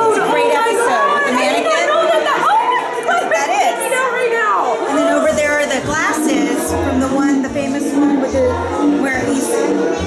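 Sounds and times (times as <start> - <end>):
people talking at once: 0.0 - 10.0.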